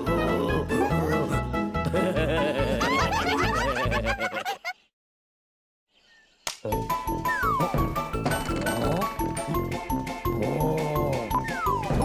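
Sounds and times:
high-pitched cartoon giggling: 0.2s - 4.9s, 7.3s - 8.0s, 8.6s - 9.7s.

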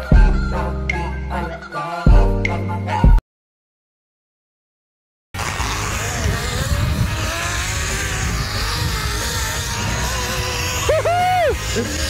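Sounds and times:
zip-line trolley whirring on cable: 5.4s - 12.0s.

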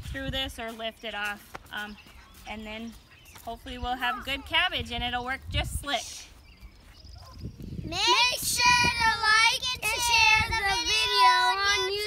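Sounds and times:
children singing: 8.2s - 12.0s.

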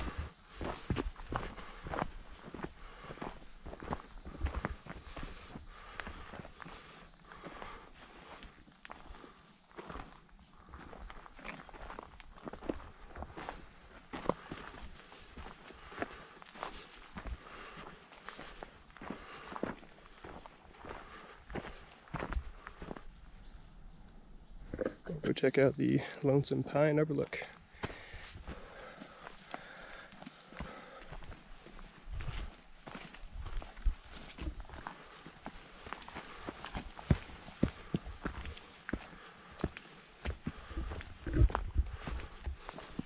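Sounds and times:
footsteps on dirt trail: 0.0s - 23.3s, 26.6s - 43.0s.

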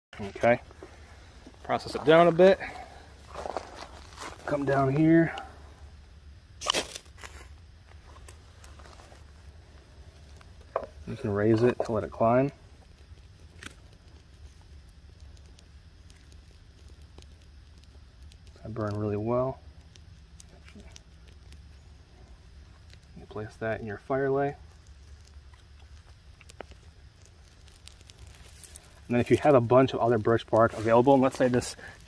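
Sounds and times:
dry bark crinkling: 0.2s - 32.0s
low steady hum: 0.2s - 32.0s
knife scraping bark: 6.6s - 7.5s.

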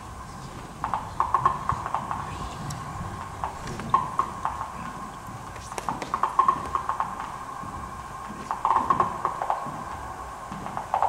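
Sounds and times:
low rumble: 0.0s - 10.5s.

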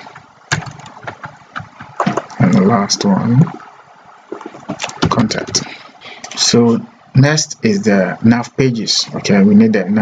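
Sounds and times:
keyboard keys clicking: 0.5s - 2.3s.

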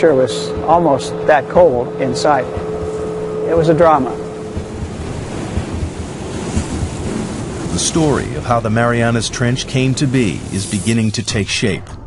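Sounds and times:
rushing ocean: 0.0s - 11.4s
uneven low rumble: 0.0s - 12.0s.

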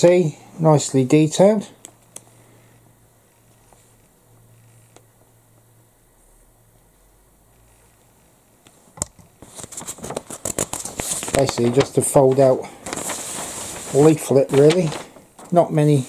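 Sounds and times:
faint room hum: 0.0s - 16.0s
paper leaflet crackling rustle: 9.4s - 16.0s.

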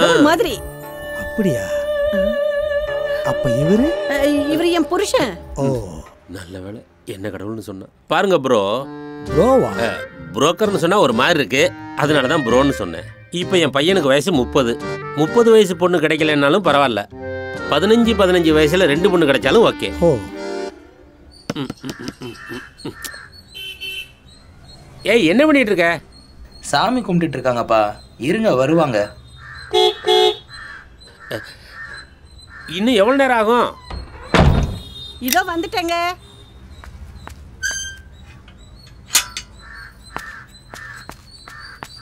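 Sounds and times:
crow cawing: 21.8s - 23.4s, 29.3s - 32.9s, 39.5s - 41.9s.

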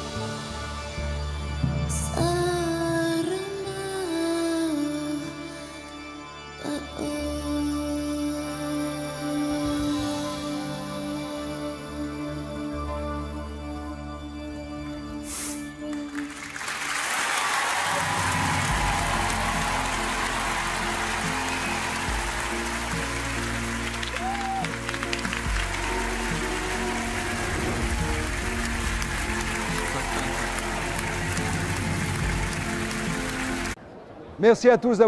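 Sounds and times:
studio audience applauding: 15.9s - 33.8s.

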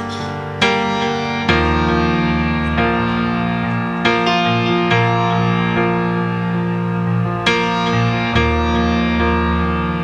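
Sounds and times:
keyboard chords ringing: 0.0s - 10.0s.

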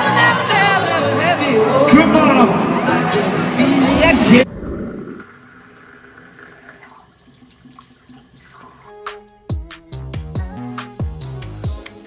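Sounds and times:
sink tap running: 4.8s - 8.9s.

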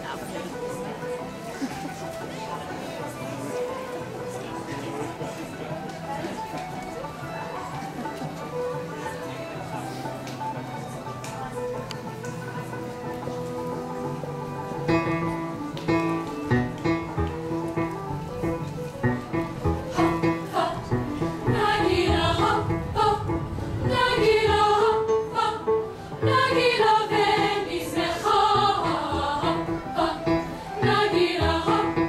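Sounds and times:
murmur of voices: 0.0s - 32.0s.

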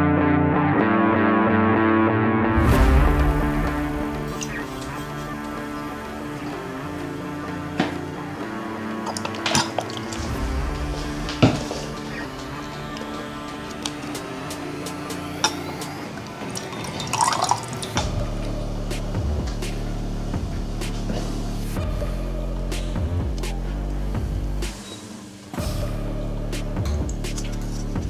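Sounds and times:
music with steady beat: 2.3s - 28.0s
glass beakers clinking: 16.4s - 18.0s
liquid pouring into glass: 16.4s - 18.0s.

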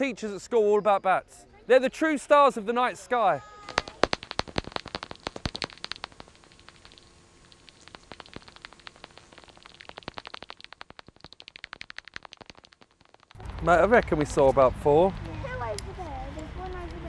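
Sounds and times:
bat detector clicks: 3.6s - 14.2s.

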